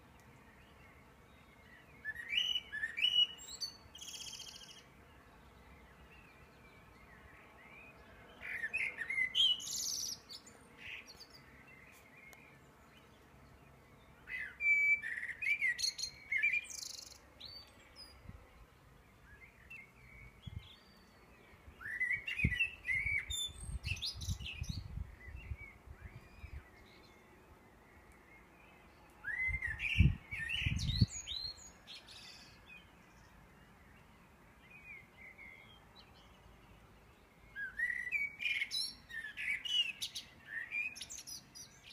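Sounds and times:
songbird singing: 0.0s - 41.9s.

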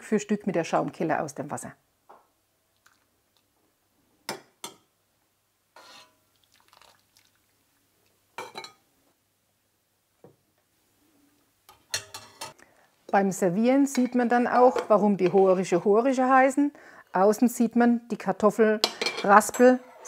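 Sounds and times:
metal ladle clinking on pot: 11.7s - 12.5s.

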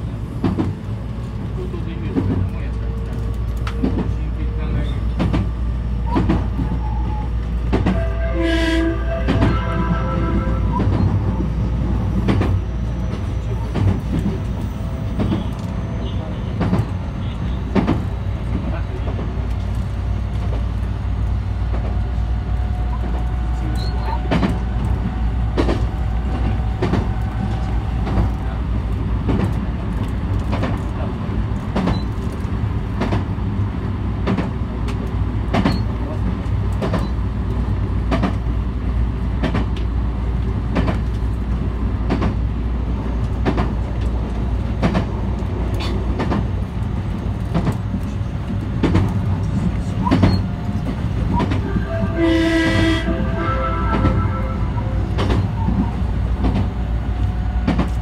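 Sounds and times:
train running rumble: 0.0s - 58.0s
pitched tones: 51.4s - 55.6s.

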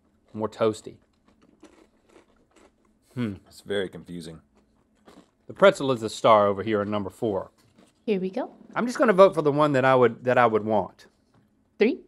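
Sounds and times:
person chewing crunchy pretzel: 0.0s - 8.0s.

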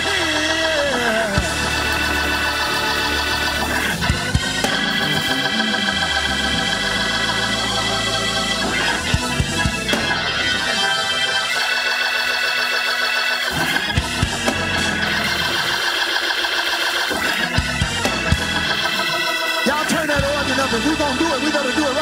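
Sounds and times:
church organ chords: 0.0s - 22.0s.

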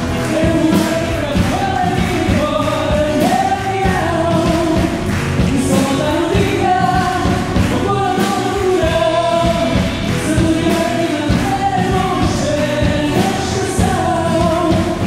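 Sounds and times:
drum kit beat: 0.0s - 15.0s
guitar: 0.0s - 15.0s
man singing: 0.0s - 15.0s
woman singing: 0.2s - 15.0s.

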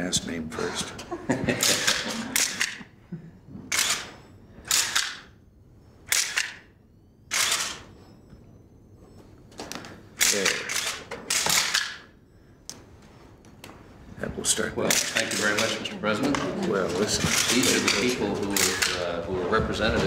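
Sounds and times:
camera shutters clicking: 3.7s - 4.1s, 6.1s - 6.6s, 7.3s - 7.9s, 10.2s - 12.1s, 17.2s - 19.0s.

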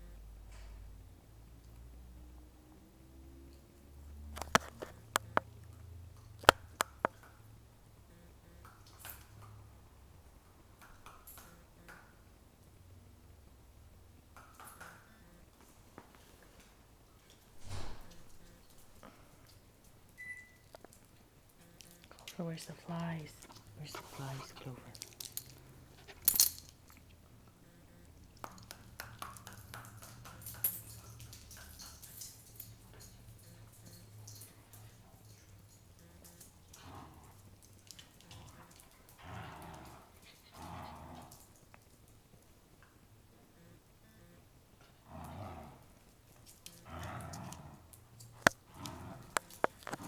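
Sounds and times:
dog claws on wooden floor: 23.3s - 27.1s, 48.2s - 50.0s
dog clicking on hardwood floor: 28.4s - 33.2s.

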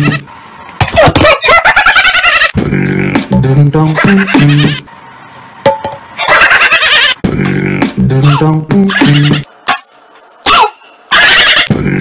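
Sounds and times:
bird-like squawking: 10.5s - 11.7s.

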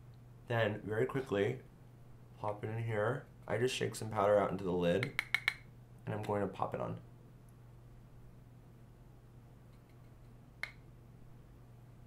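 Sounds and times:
low steady hum: 0.0s - 12.0s
sharp click: 5.0s - 6.4s.

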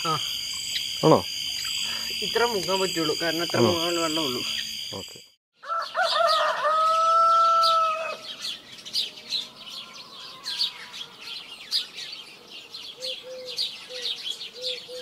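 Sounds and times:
small birds chirping: 0.0s - 15.0s
rooster crowing: 5.6s - 8.5s, 9.3s - 11.6s.

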